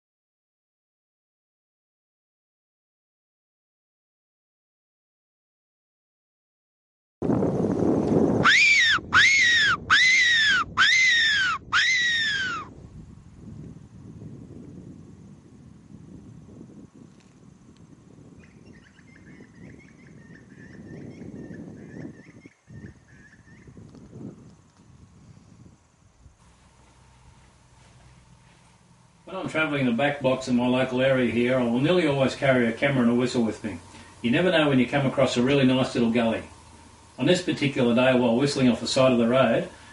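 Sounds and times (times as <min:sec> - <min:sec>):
predator call squeals: 0:08.4 - 0:12.7.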